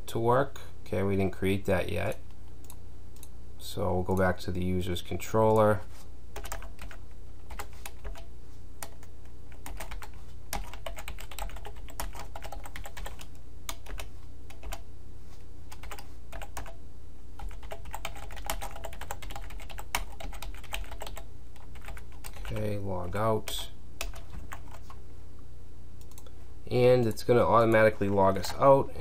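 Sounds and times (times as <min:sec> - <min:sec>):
steady low hum: 0:00.0 - 0:29.0
typing on computer keyboard: 0:06.4 - 0:14.8, 0:15.7 - 0:16.8, 0:17.4 - 0:22.7, 0:24.0 - 0:24.9.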